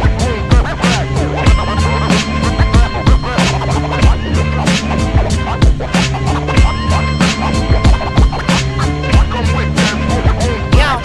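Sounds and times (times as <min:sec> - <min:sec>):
deep sustained bass notes: 0:00.0 - 0:11.0
hip hop beat: 0:00.0 - 0:11.0
sharp drum hits: 0:00.5 - 0:10.0.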